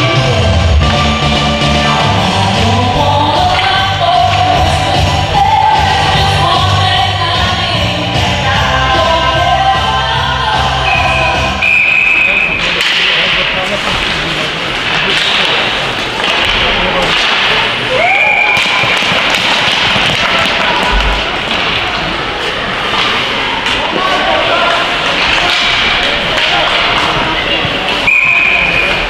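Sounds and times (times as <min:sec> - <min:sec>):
arena music: 0:00.0 - 0:18.8
short high whistle blast: 0:10.9 - 0:12.5
sticks and puck knocking: 0:12.5 - 0:17.8, 0:18.4 - 0:22.1, 0:25.0 - 0:28.2.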